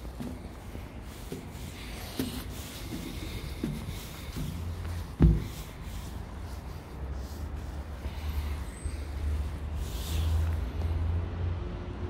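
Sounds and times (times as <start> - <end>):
distant road traffic: 0.0 - 12.0.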